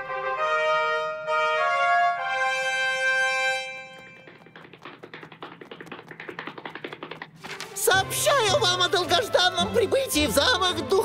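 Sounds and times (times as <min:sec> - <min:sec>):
trumpet fanfare chord: 0:00.0 - 0:04.2
light quick footsteps: 0:03.3 - 0:08.8.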